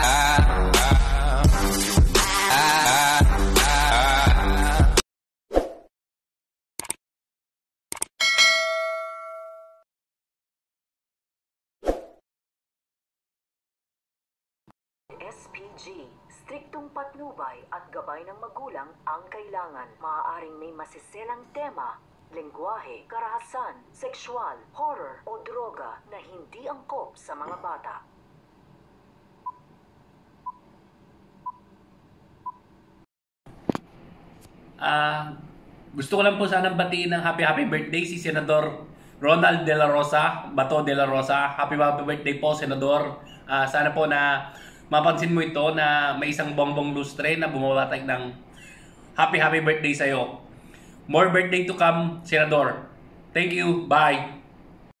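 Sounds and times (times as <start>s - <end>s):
bright bell ding: 8.2s - 9.8s.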